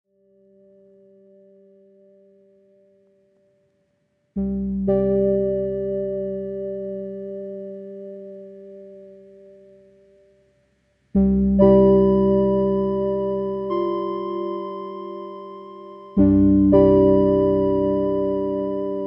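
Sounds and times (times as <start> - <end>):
keyboard chords ringing: 4.4 - 10.2, 11.2 - 19.0.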